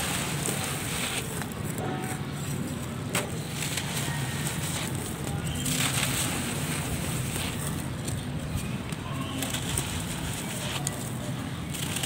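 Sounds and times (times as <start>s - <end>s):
dry mud crumbling: 2.6s - 12.0s.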